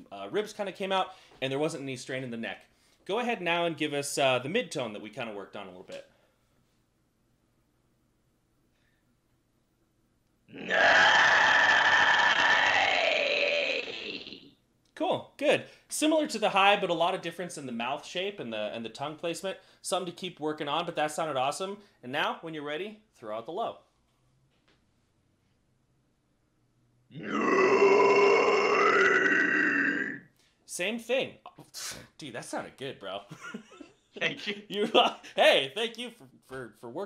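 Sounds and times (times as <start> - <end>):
man's distorted metal scream: 10.5 - 14.4, 27.2 - 30.2.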